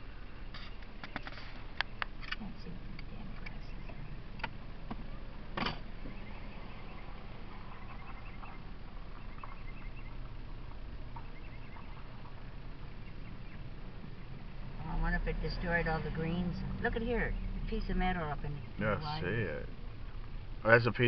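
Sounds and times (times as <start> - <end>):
car engine and road hum: 0.0 - 21.0.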